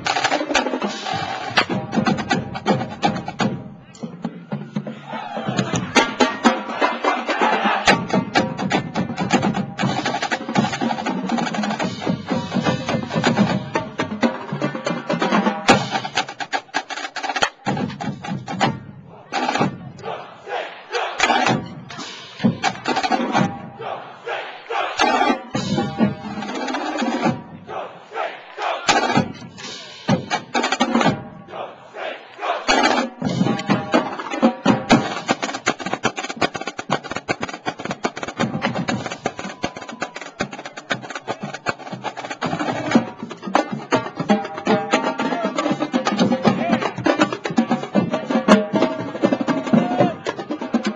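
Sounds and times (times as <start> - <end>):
snare drum strokes: 0.0 - 4.1, 15.3 - 18.7, 21.0 - 23.5, 28.9 - 31.2.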